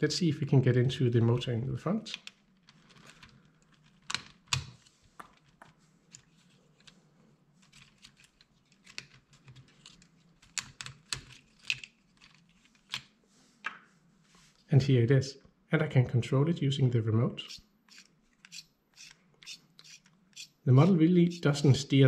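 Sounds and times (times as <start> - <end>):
plastic pieces clicking: 7.8 - 13.1.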